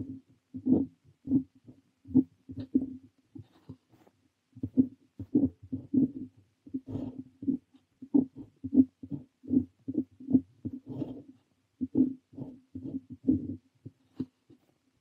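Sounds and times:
pen nib scratching on paper: 0:00.0 - 0:14.7.

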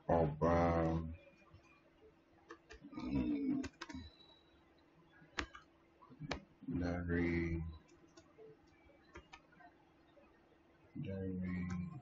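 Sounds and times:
keyboard key clicks: 0:05.4 - 0:05.6.

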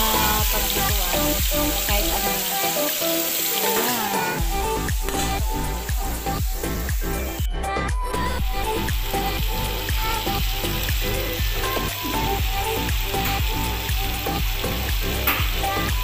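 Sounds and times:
meat sizzling in a grill pan: 0:00.0 - 0:07.4, 0:08.3 - 0:16.0
music with steady beat: 0:00.0 - 0:16.0.

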